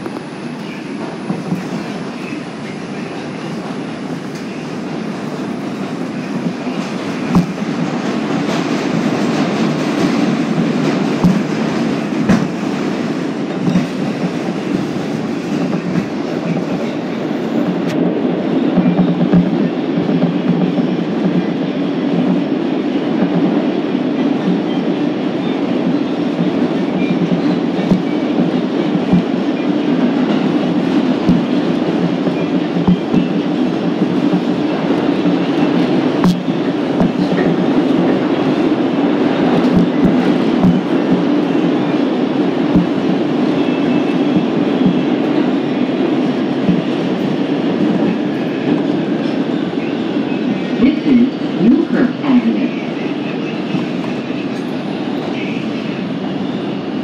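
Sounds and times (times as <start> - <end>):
subway train wheels rumbling: 0.0 - 57.0.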